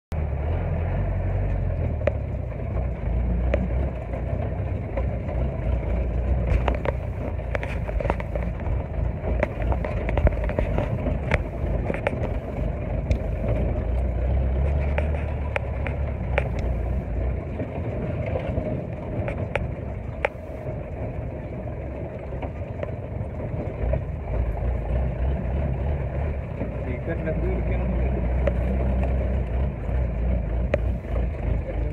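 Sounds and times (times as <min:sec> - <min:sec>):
engine low rumble: 0:00.1 - 0:31.9
vehicle knocks and rattles: 0:00.2 - 0:31.9.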